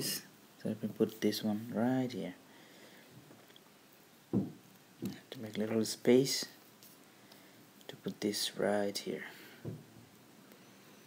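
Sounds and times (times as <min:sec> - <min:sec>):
short dull thump: 0:04.3 - 0:05.2.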